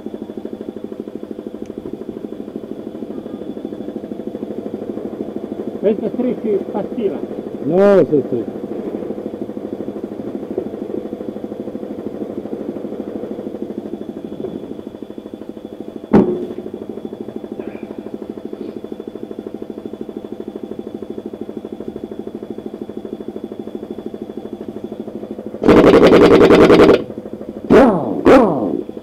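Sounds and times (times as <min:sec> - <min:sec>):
air compressor humming: 0:00.0 - 0:29.0
impact wrench hammering: 0:25.6 - 0:27.1.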